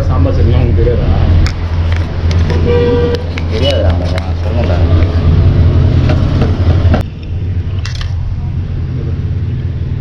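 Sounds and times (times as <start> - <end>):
machinery low rumble: 0.0 - 10.0.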